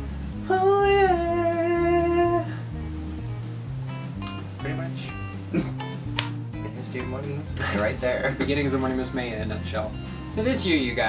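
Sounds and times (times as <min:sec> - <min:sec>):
soft guitar and bass music: 0:00.0 - 0:11.0
man singing high note: 0:00.4 - 0:02.6.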